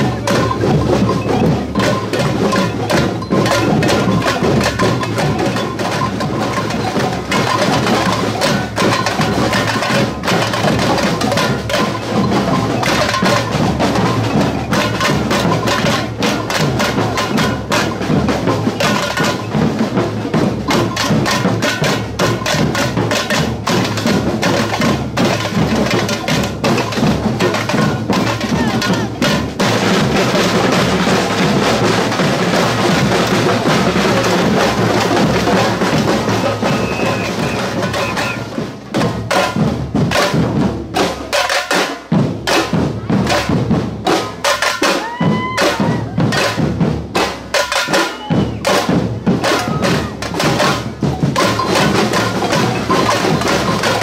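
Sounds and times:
clacking hand percussion: 0:00.0 - 0:54.0
samba drum band playing: 0:00.0 - 0:54.0.

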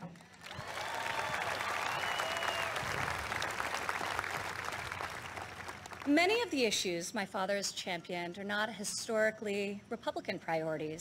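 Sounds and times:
audience applauding: 0:00.4 - 0:06.1.

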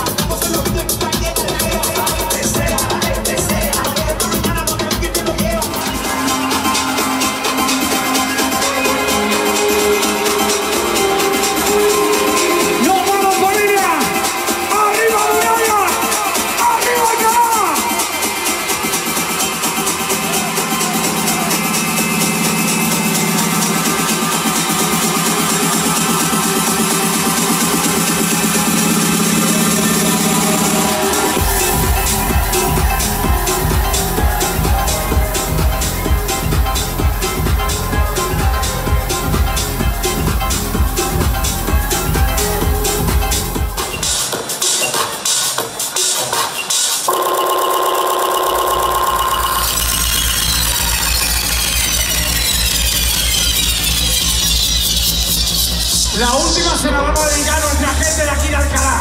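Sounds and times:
loud electronic dance music: 0:00.0 - 0:59.0
deep bass line: 0:18.0 - 0:44.2, 0:48.7 - 0:59.0
buzzy synth chord: 0:19.5 - 0:43.8, 0:47.1 - 0:54.5.

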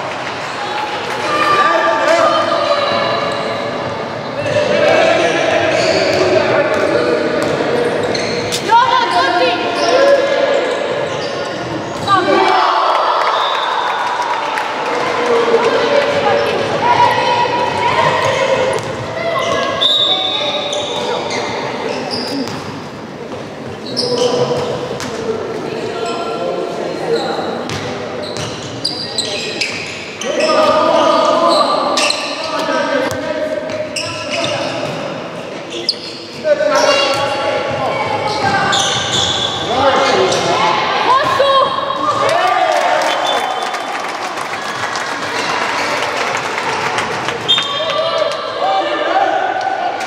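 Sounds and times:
people shouting in a hall: 0:00.0 - 0:07.4, 0:12.1 - 0:22.4, 0:36.6 - 0:50.0.

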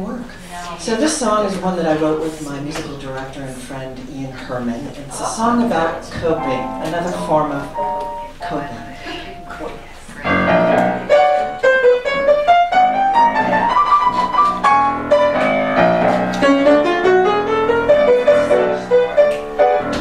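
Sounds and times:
grand piano chords and runs: 0:05.5 - 0:20.0.

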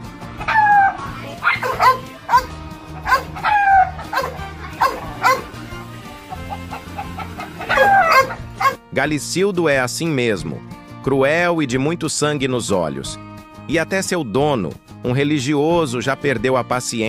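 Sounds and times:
background music with bass line: 0:00.0 - 0:17.0
rooster crying: 0:00.4 - 0:05.5, 0:06.3 - 0:08.8
dog yelping: 0:00.4 - 0:05.6, 0:07.2 - 0:08.8.

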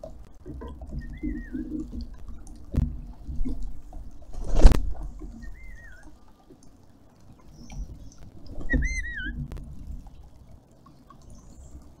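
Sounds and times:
fountain trickling: 0:00.0 - 0:04.4, 0:05.0 - 0:12.0
bird warbling whistled call: 0:01.0 - 0:01.8, 0:05.4 - 0:06.1, 0:08.6 - 0:09.4.

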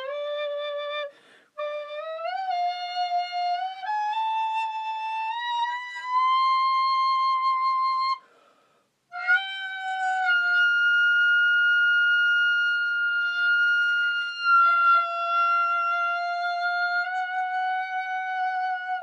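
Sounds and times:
recorder playing held notes: 0:09.1 - 0:19.0.

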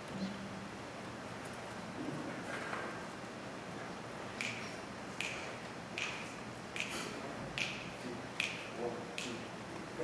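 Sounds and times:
sharp finger snaps: 0:04.4 - 0:09.4.

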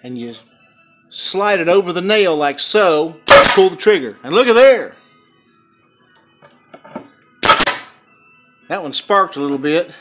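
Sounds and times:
nail gun shot: 0:03.3 - 0:03.7, 0:07.4 - 0:08.0.

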